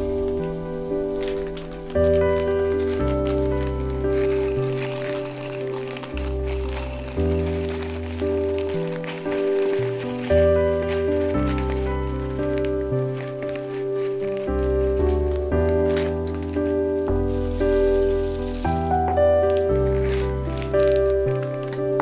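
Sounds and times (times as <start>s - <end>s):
background music: 0.0s - 22.0s
fried snacks poured into plastic jar: 1.2s - 22.0s.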